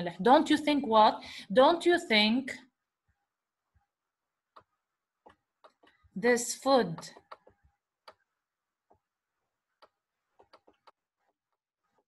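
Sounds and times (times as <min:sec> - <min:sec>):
stylus tapping on tablet: 0:04.5 - 0:06.0, 0:06.8 - 0:09.1, 0:09.7 - 0:12.0.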